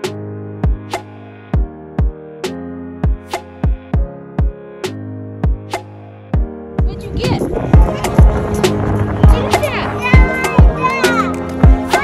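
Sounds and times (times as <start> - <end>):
young child's voice: 6.8 - 7.5, 9.2 - 12.0.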